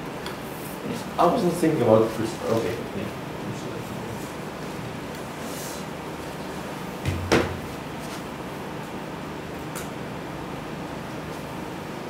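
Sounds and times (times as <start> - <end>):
sharp knock on hard surface: 7.0 - 7.6.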